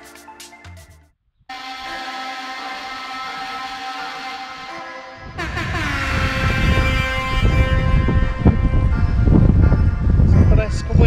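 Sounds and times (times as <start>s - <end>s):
steady held tones: 1.5s - 11.0s
wind buffeting microphone: 5.2s - 11.0s.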